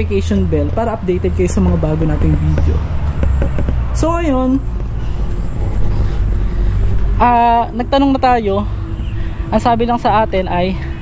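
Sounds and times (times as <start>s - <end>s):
faint hum: 0.0s - 11.0s
vehicle traffic rumble: 0.0s - 11.0s.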